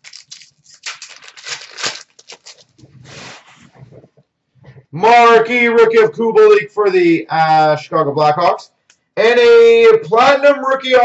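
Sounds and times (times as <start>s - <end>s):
cards and wrapper rustling: 0.0s - 3.6s.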